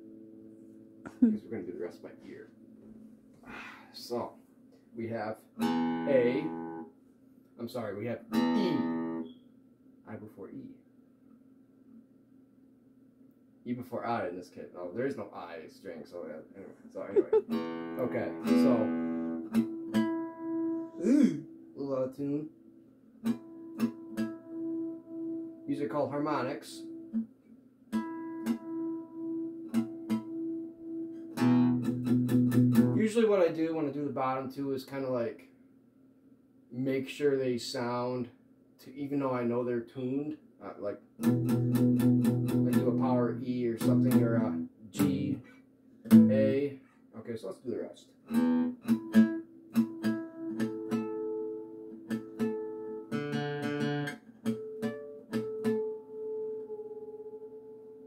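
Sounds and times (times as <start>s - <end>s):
guitar chord strummed: 5.6s - 6.8s, 8.3s - 9.3s, 17.5s - 20.8s, 41.2s - 45.4s, 48.3s - 58.0s
guitar harmonic chiming: 5.6s - 6.8s, 17.2s - 21.0s, 55.1s - 58.0s
guitar notes picked: 5.6s - 6.8s, 8.3s - 9.4s, 17.0s - 21.6s, 23.2s - 27.2s, 27.9s - 33.0s, 41.2s - 45.4s, 46.1s - 46.7s, 48.3s - 58.0s.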